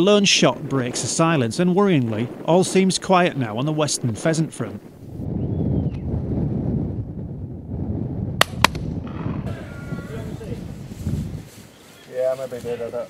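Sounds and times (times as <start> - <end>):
wind rumble on microphone: 0.0 - 11.9
sharp cracks: 8.4 - 9.2.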